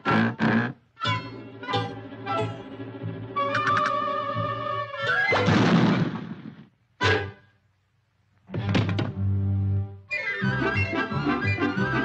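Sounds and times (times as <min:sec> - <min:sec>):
orchestral music: 0:01.1 - 0:05.0.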